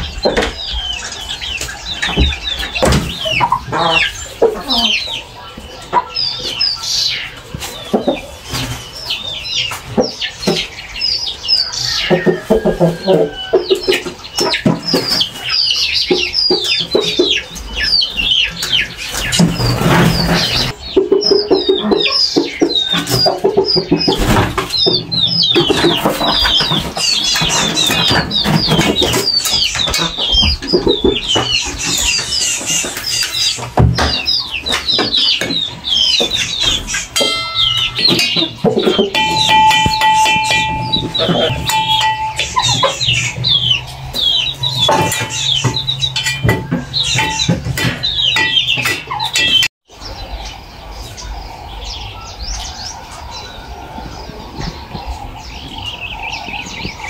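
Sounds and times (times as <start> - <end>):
chickens clucking: 0.0 - 57.0
small birds chirping: 0.0 - 57.0.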